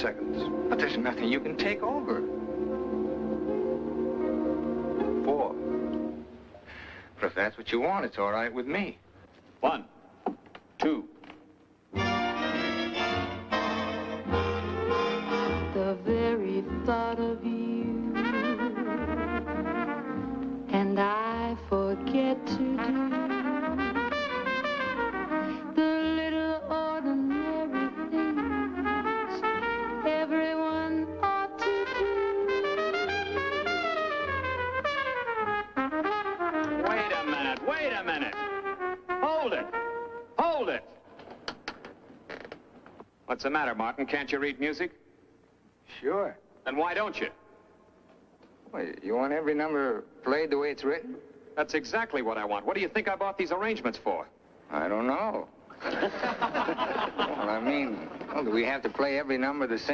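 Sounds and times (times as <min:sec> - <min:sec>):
lead trumpet improvising: 0:12.0 - 0:15.8, 0:18.0 - 0:20.6, 0:22.0 - 0:26.4, 0:27.0 - 0:40.5
big band swing music: 0:12.0 - 0:16.0, 0:18.0 - 0:20.6, 0:22.7 - 0:25.8, 0:27.2 - 0:30.2, 0:31.2 - 0:40.2.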